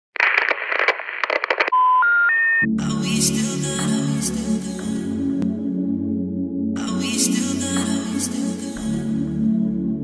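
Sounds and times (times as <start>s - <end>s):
crackling radio static: 0.1s - 2.6s
electronic beep: 1.7s - 2.7s.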